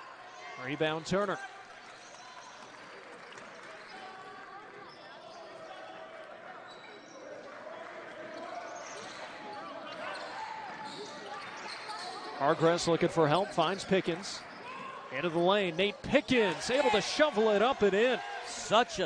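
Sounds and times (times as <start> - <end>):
murmur of arena crowd: 0.0 - 19.0.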